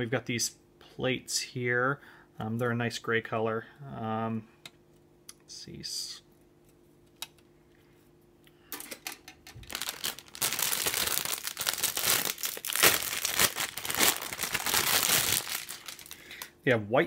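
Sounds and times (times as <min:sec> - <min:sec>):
plastic bags crinkling: 0:09.6 - 0:16.5.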